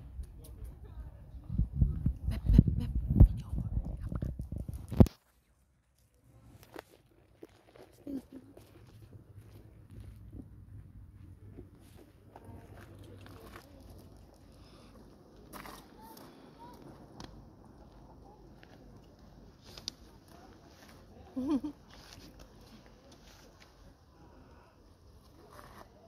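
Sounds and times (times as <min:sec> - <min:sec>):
deer eating: 0:06.5 - 0:10.7.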